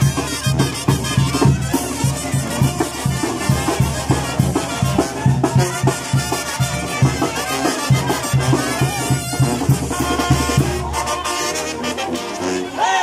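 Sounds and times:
tuba marking a beat: 0:00.0 - 0:12.8
brass band playing: 0:00.0 - 0:13.0.

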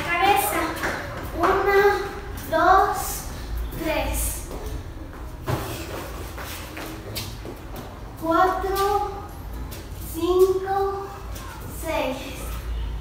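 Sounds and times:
girl calling out: 0:10.7 - 0:12.8.

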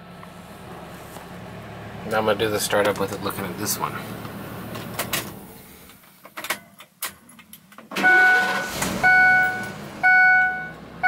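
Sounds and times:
truck engine starting: 0:00.0 - 0:06.0, 0:07.9 - 0:11.0
seatbelt warning chime: 0:08.0 - 0:10.8.

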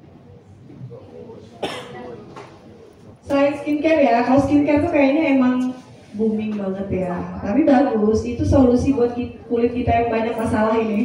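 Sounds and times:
faint murmured voices: 0:00.0 - 0:11.0
person coughing: 0:01.6 - 0:02.2.

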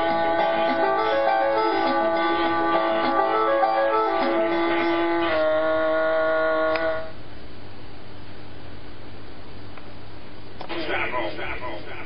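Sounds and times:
electronic keyboard tone: 0:00.0 - 0:05.4.

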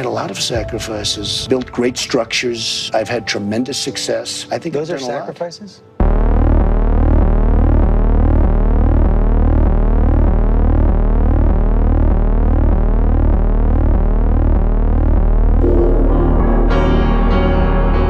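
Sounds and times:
music with higher notes: 0:06.0 - 0:18.0
pulsing synthesized electronic tone: 0:06.0 - 0:18.0.

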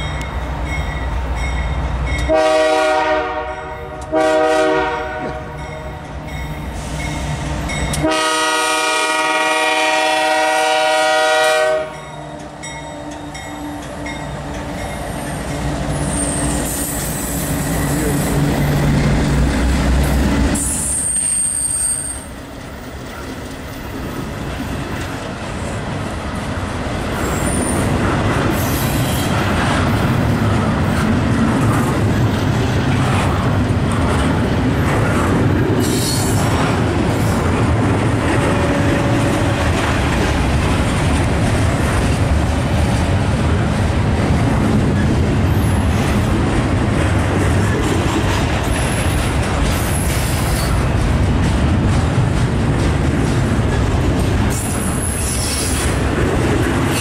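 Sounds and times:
train wheel noise: 0:00.0 - 0:57.0
locomotive horn blasts: 0:02.3 - 0:05.7, 0:07.9 - 0:12.1
locomotives rumbling past: 0:11.7 - 0:20.8, 0:22.2 - 0:57.0
high wheel squeals: 0:20.6 - 0:22.4.

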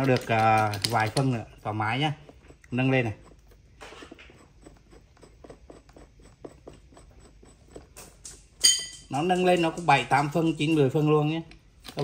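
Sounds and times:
jack screw clicking and rubbing: 0:00.0 - 0:10.4.

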